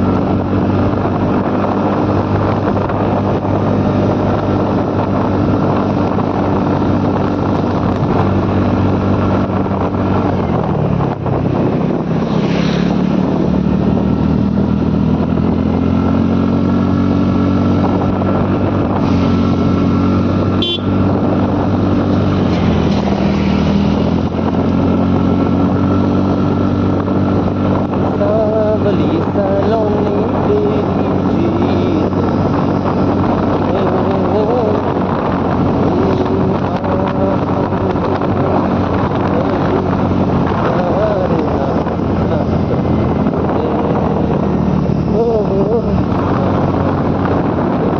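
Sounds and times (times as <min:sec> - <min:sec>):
motorcycle engine running: 0:00.0 - 0:47.9
wind buffeting microphone: 0:00.0 - 0:47.9.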